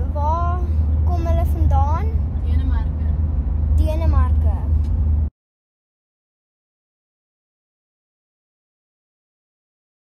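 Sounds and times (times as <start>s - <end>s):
child talking: 0.0s - 2.8s, 3.8s - 4.8s.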